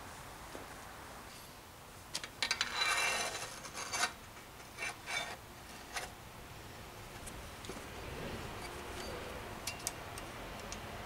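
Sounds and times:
clinking metal scrape: 2.5s - 4.2s.

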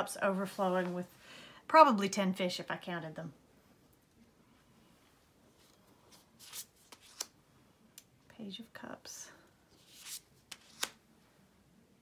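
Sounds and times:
card sliding papery swish: 9.8s - 11.0s
card edges clicking: 10.0s - 11.0s.

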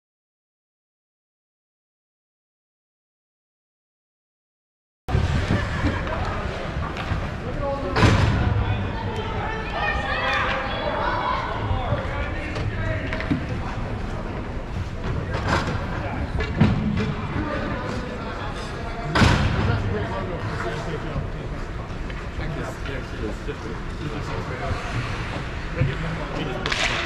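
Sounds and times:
rink background noise: 5.1s - 27.0s
hockey sticks knocking puck: 25.9s - 27.0s.

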